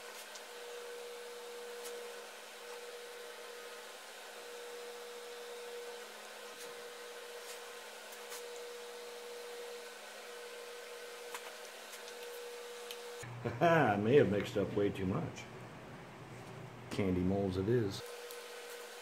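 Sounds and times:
background hum with tone: 0.0s - 19.0s.

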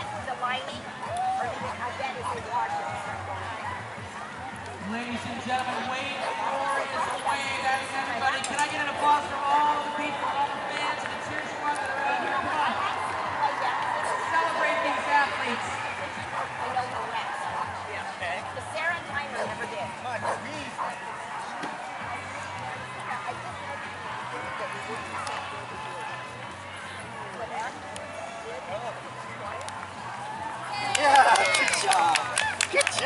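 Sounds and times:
chatter of voices: 0.0s - 33.0s
people talking indistinctly: 0.0s - 33.0s.

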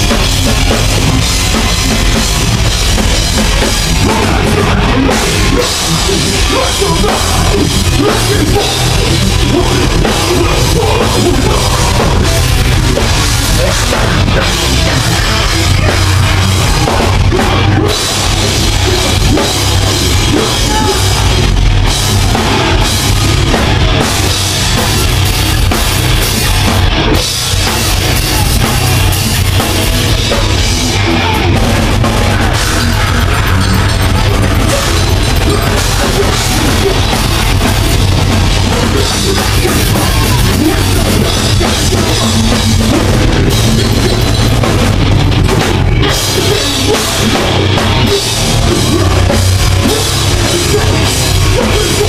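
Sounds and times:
drum kit: 0.0s - 52.0s
heavy guitars: 0.0s - 52.0s.

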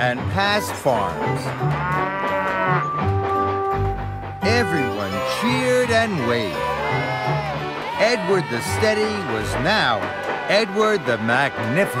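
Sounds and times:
light background music: 0.0s - 12.0s
cow mooing: 1.7s - 3.0s.

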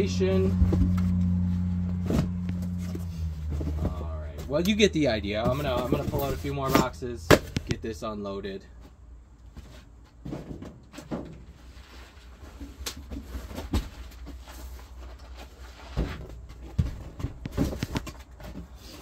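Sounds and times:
low steady hum: 0.0s - 9.7s
cardboard boxes knocking and scuffing: 1.9s - 4.6s, 5.3s - 7.7s, 9.5s - 19.0s.

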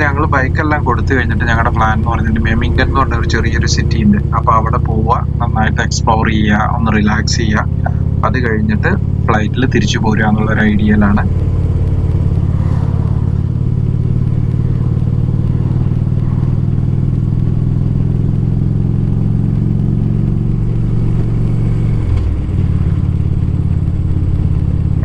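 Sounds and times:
low engine drone: 0.0s - 25.0s.

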